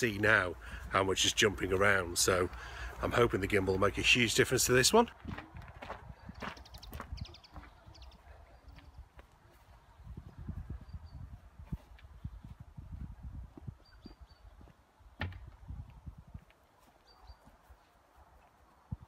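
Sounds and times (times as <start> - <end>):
footsteps on grass: 0.1 - 10.5, 11.5 - 18.6.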